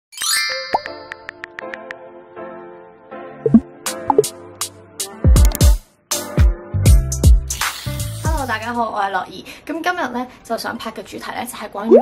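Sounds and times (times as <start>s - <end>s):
pop sound effect: 3.4s - 4.3s
light electronic music: 3.5s - 4.4s.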